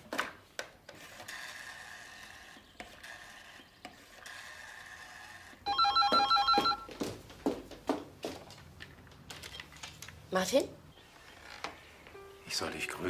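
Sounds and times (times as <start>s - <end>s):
electronic phone trilling: 5.7s - 6.9s.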